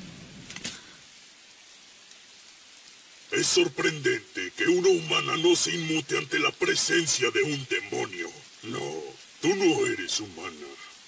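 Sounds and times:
faint steady rain: 0.0 - 11.0.

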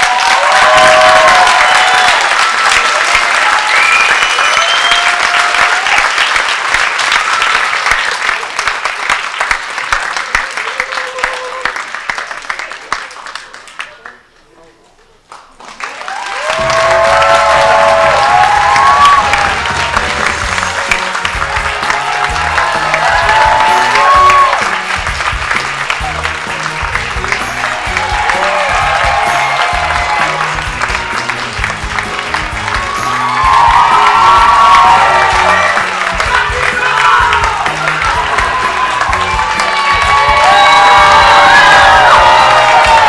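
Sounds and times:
audience applause: 0.0 - 14.3, 15.3 - 43.0
upbeat music with pulsing bass: 18.0 - 43.0.

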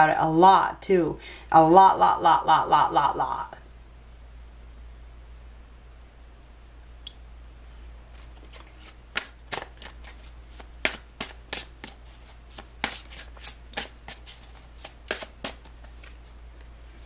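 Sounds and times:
cards being shuffled: 8.1 - 16.8.

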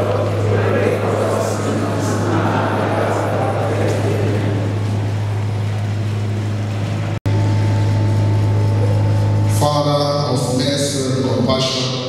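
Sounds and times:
noisy hiss: 0.0 - 12.0
steady low hum: 0.0 - 12.0.

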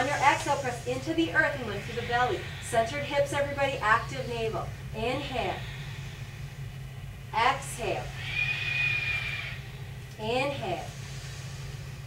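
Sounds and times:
breathy exhale with whistling tone: 8.1 - 9.9, 10.9 - 12.0.

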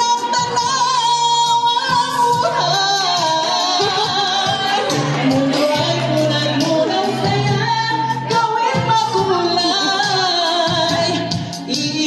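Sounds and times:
musical accompaniment: 0.0 - 12.0
woman singing into a microphone: 0.0 - 12.0.

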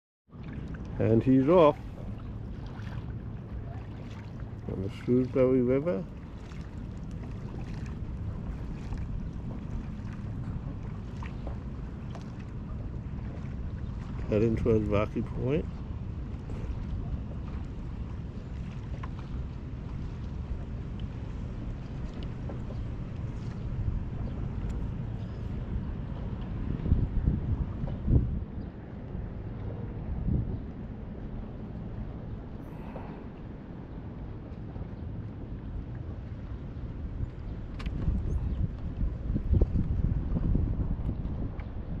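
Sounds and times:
choppy water: 0.3 - 42.0
wind buffeting microphone: 0.3 - 42.0.

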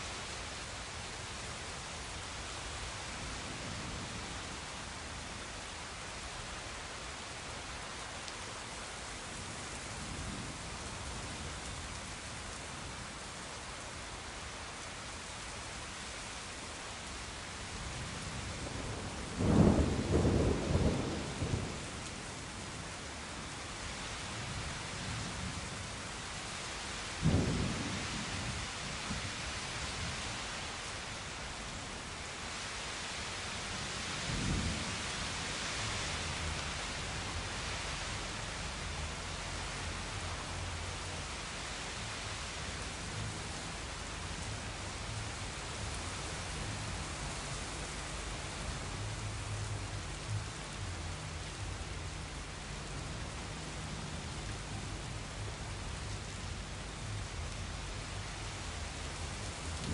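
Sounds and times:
steady rain: 0.0 - 59.9
thunder cracks and rumble: 18.6 - 22.2, 27.2 - 28.6, 59.6 - 59.9.

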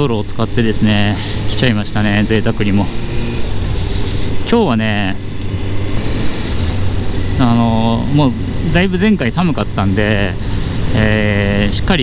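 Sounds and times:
motorcycle engine cruising: 0.0 - 12.0
road noise: 0.0 - 12.0.

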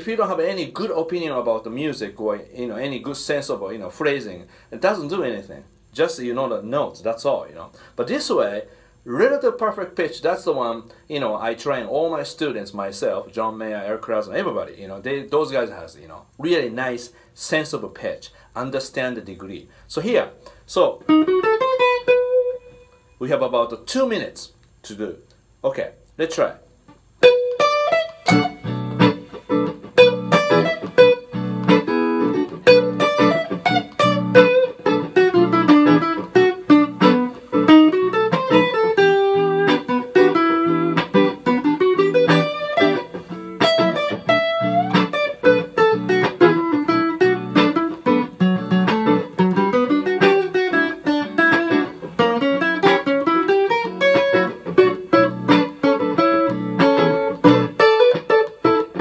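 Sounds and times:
looped guitar chord backing: 20.4 - 23.1, 27.2 - 59.0
electric guitar blues solo: 20.4 - 23.2, 26.9 - 59.0.

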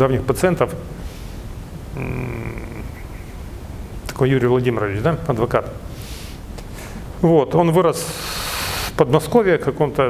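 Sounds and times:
man humming in hesitation: 1.9 - 3.4.

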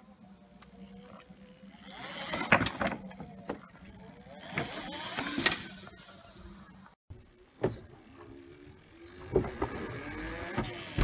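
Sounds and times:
electric motor whining: 0.0 - 7.0.

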